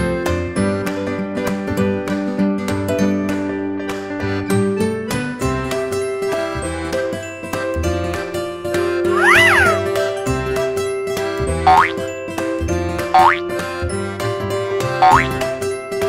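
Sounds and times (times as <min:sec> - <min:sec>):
short rising whoops: 0:09.1 - 0:09.8
rising and falling pitch glide: 0:09.1 - 0:09.9.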